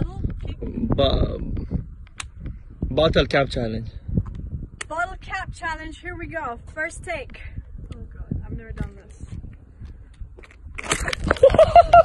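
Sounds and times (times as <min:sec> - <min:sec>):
wind rumbling on microphone: 0:00.0 - 0:12.0
footsteps on asphalt: 0:08.6 - 0:11.5.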